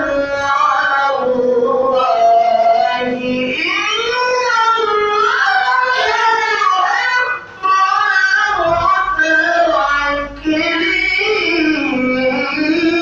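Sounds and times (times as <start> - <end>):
man chanting into a microphone: 0.0 - 13.0.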